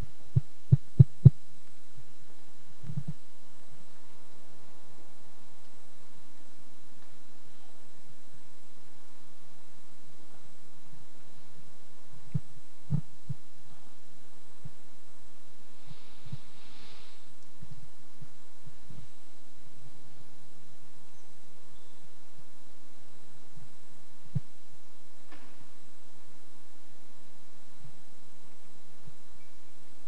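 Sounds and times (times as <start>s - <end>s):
faint room hum: 0.0s - 30.0s.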